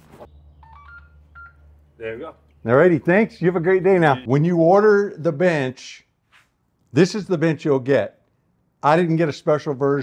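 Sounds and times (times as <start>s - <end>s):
electronic device beeps: 0.3s - 1.7s.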